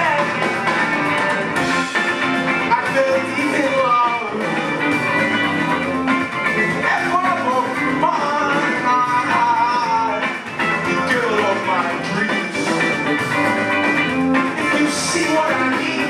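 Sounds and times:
bass guitar: 0.0s - 16.0s
drum kit: 0.0s - 16.0s
electric guitar: 0.0s - 16.0s.

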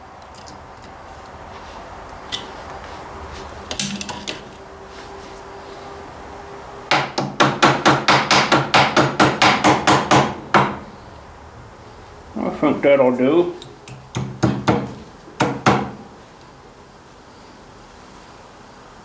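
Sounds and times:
hammer striking steel: 3.7s - 4.5s, 6.9s - 10.8s, 13.6s - 16.0s.

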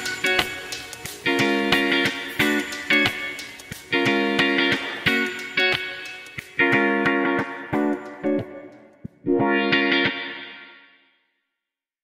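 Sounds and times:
guitar chords with effects: 0.0s - 11.1s.

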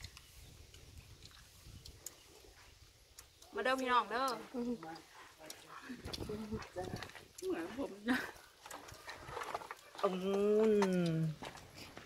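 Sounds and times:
women chatting: 3.5s - 8.6s, 9.9s - 11.4s.

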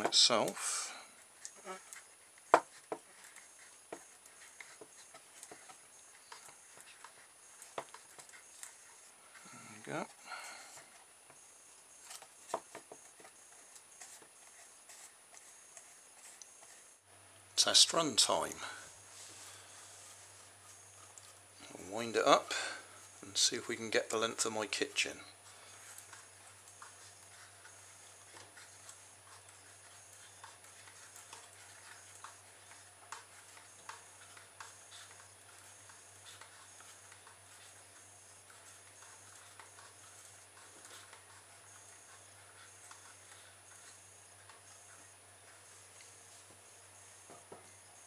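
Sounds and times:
soft cardboard rustle: 0.0s - 48.0s
fingers tapping on cardboard: 1.4s - 9.0s, 12.0s - 16.7s.

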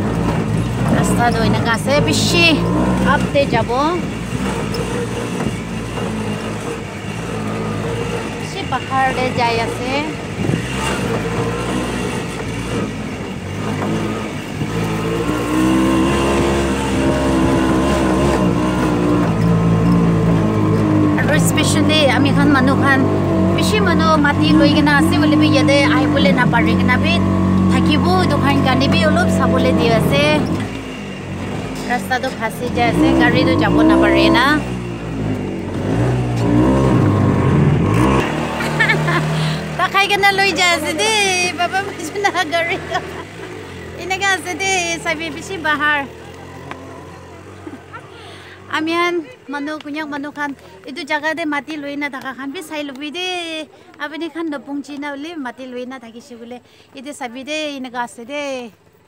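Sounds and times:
vehicle engine low hum: 0.0s - 57.1s
road noise: 0.0s - 59.0s
person speaking: 39.2s - 46.1s.

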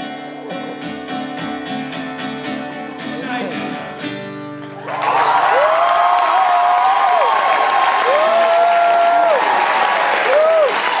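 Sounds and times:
audience applauding and cheering: 4.6s - 11.0s
long whoops: 4.9s - 11.0s.

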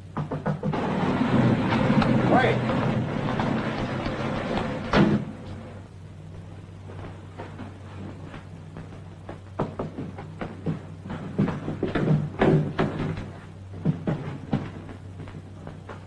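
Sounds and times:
knocking on wooden door: 0.1s - 0.8s
loud thump: 4.9s - 5.4s.

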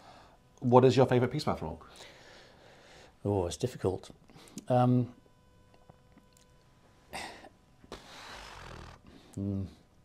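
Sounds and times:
man breathing: 1.9s - 3.2s, 7.1s - 9.4s.

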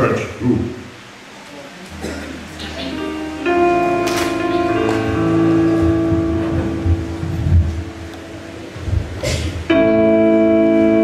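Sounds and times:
held keyboard chord: 1.9s - 11.0s.

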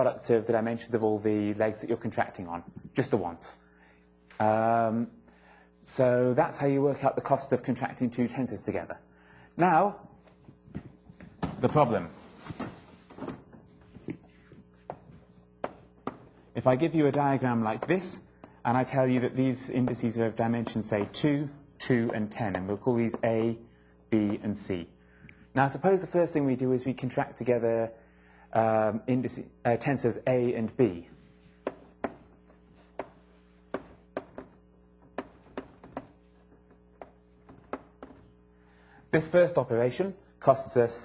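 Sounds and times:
faint steady hum: 0.0s - 41.0s
pen tapping on a board: 14.9s - 16.4s, 17.1s - 21.3s, 22.0s - 23.6s, 24.2s - 24.5s, 31.6s - 38.3s.

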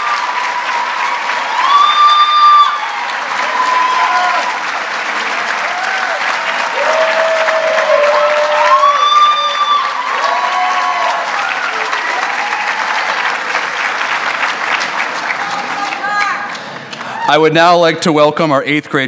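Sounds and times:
voices cheering: 0.0s - 17.6s
audience applauding: 0.0s - 17.9s.

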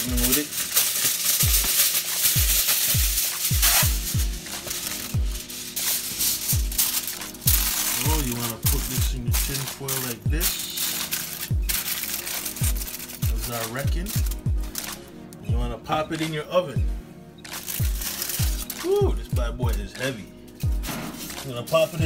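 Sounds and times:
aluminium foil crinkling: 0.0s - 15.1s, 17.4s - 22.0s.

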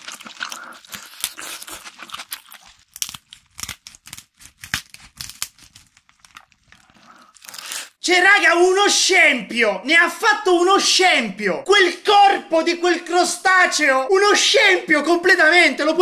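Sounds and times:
shell crackling and tearing: 0.0s - 7.9s.

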